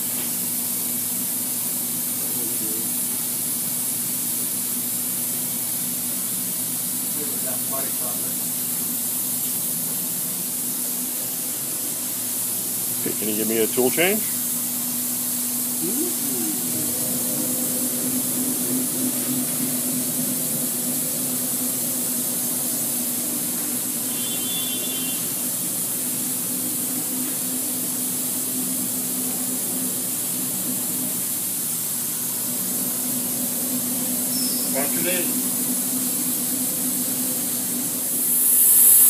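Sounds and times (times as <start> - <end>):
router machine humming and hissing: 7.1 - 39.0.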